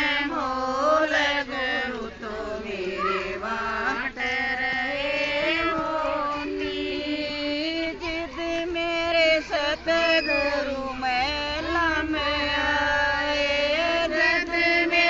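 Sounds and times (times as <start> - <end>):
women singing devotional song: 0.0 - 15.0.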